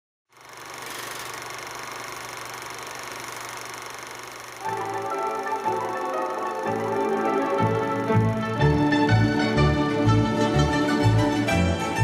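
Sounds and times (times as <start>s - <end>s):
film projector whirring: 0.3s - 12.0s.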